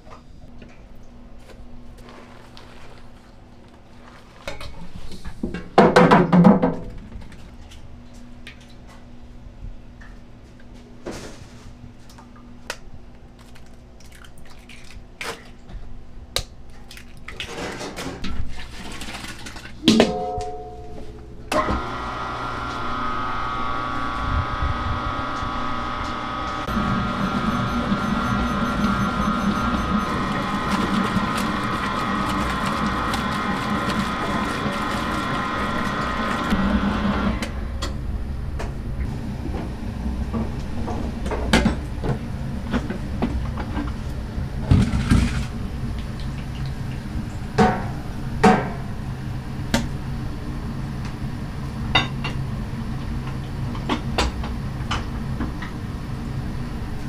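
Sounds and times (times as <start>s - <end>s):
metal bowl clanking: 19.8s - 21.5s
stand mixer motor hum: 21.6s - 37.3s.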